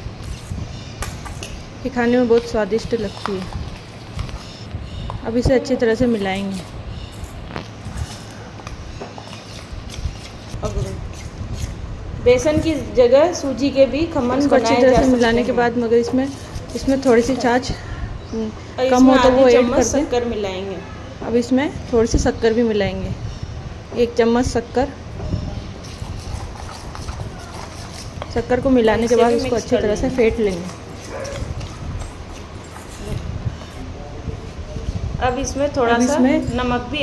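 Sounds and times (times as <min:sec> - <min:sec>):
metal spoon stirring thick batter: 0:05.6 - 0:11.8, 0:25.6 - 0:34.6.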